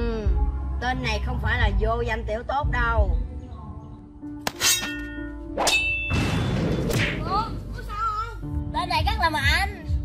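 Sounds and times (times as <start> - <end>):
background music: 0.0 - 10.0
metallic sword clashes: 4.4 - 6.2.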